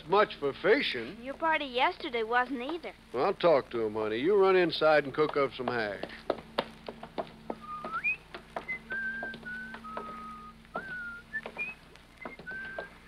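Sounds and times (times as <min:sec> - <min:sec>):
faint steady hum: 0:00.0 - 0:13.0
person whistling a tune: 0:07.6 - 0:13.0.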